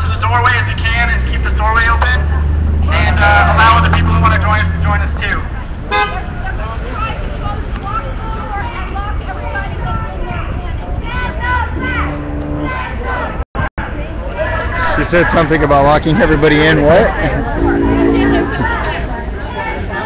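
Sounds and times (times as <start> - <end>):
crowd talking and shouting: 0.0 - 20.0
low engine drone: 1.6 - 5.6, 17.3 - 19.0.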